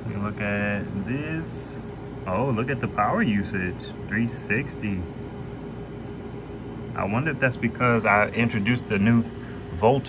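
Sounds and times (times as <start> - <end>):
air conditioner fan whooshing: 0.0 - 10.0.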